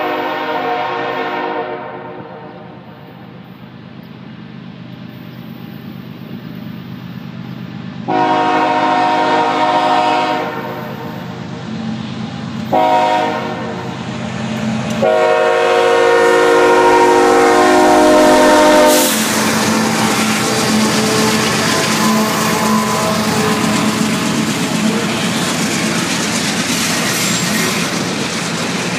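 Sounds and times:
locomotive air horn chord: 0.0 - 2.9, 8.1 - 11.3, 12.7 - 14.0, 15.0 - 25.3
train rumbling on rails: 0.0 - 28.9.

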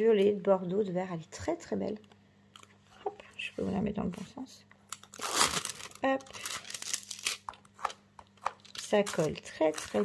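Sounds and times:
plastic film crinkling: 4.9 - 10.0.

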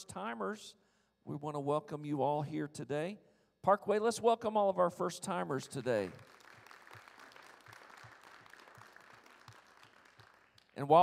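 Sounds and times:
congregation applauding: 5.8 - 11.0.

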